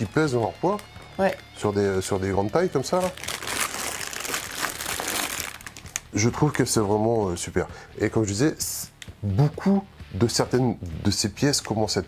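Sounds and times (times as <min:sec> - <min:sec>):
plastic bag rustling and crackling: 0:02.8 - 0:06.9.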